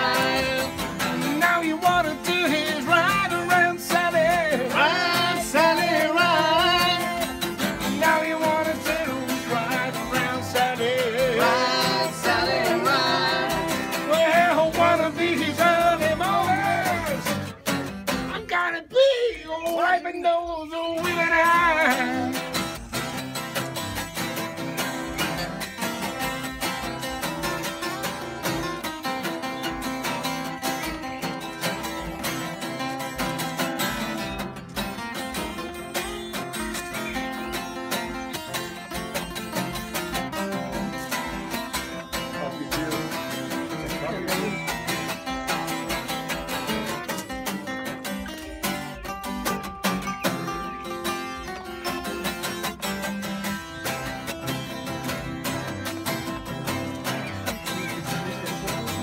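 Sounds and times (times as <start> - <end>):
person singing: 0.0 - 17.5, 18.2 - 22.8
acoustic guitars strumming: 0.0 - 59.0
fiddle playing: 21.1 - 59.0.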